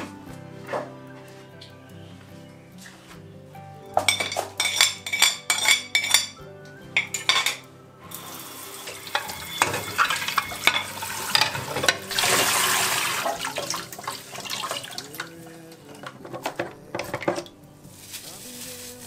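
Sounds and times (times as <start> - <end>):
dishes clinking: 3.9 - 7.8, 8.9 - 17.6
tap water running into sink: 8.1 - 17.5.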